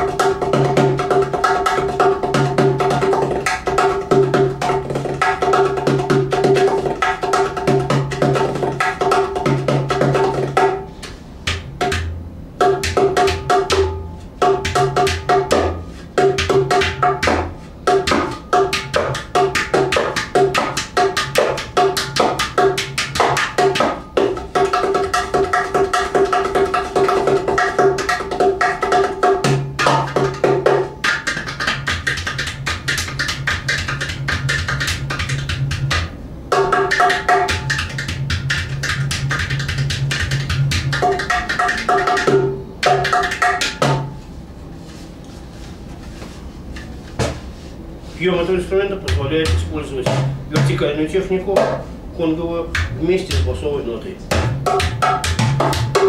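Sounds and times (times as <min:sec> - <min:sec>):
hand drum played rapidly: 0:00.0 - 0:44.2, 0:48.9 - 0:51.8, 0:52.6 - 0:53.7, 0:54.3 - 0:56.0
deep bass drum tone: 0:54.3 - 0:56.0.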